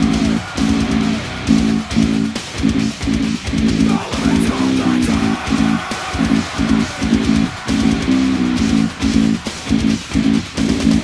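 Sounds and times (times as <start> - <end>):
electric bass guitar: 0.0 - 11.0
heavy metal backing track: 0.0 - 11.0.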